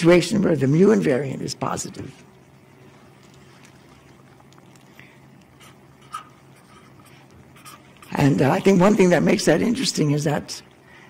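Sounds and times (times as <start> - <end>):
marker writing on paper: 5.6 - 8.4.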